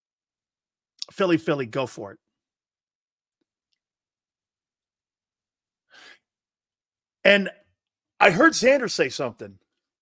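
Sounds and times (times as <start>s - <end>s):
sharp breath in: 5.9s - 6.3s.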